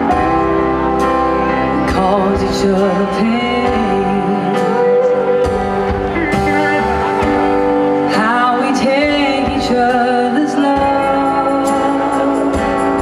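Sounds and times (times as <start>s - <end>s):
live rock band playing ballad: 0.0s - 13.0s.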